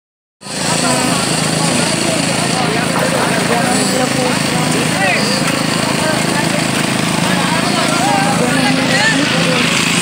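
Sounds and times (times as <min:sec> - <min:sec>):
engine running steadily: 0:00.4 - 0:10.0
people talking and calling out: 0:00.4 - 0:10.0.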